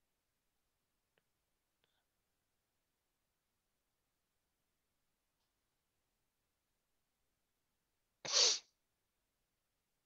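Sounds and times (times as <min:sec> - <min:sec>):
person sneezing: 0:08.2 - 0:08.8.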